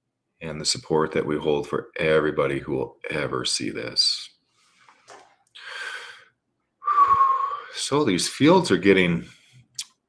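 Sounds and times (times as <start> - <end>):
person breathing: 4.5 - 7.7.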